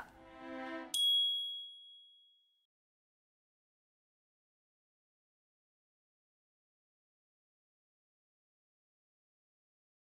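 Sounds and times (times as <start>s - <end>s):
high chime ding: 0.9s - 2.4s.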